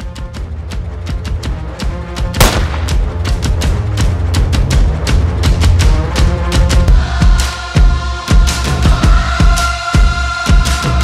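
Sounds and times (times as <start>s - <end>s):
starting pistol bang: 2.4s - 3.2s.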